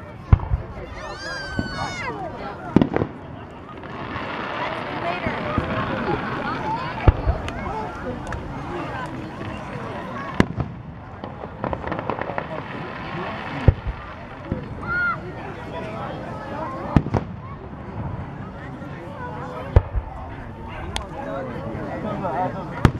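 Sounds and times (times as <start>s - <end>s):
firework crackling: 0.0s - 21.2s
firework bangs: 0.2s - 18.6s, 19.6s - 21.2s.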